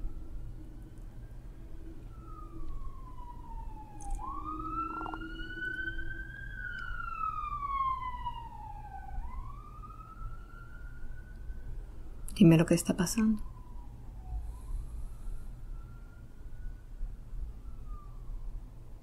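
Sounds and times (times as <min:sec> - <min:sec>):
emergency vehicle siren wailing: 0:00.0 - 0:12.2, 0:13.0 - 0:19.0
low steady hum: 0:00.0 - 0:19.0.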